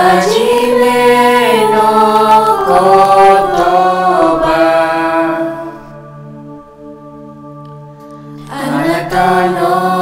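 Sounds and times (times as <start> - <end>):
group singing in harmony: 0.0 - 10.0.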